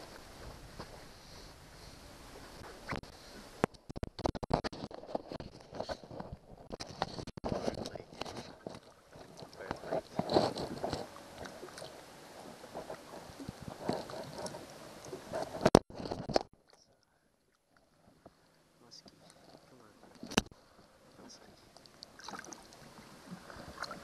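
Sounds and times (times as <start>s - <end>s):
water splashing and sloshing: 0.0s - 24.0s
crackling rubbing on camera: 2.4s - 16.5s.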